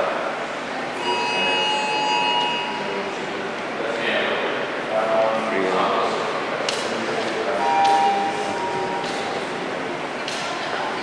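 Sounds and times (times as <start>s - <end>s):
steady multi-pitch tone: 0.7s - 3.5s, 7.5s - 10.2s.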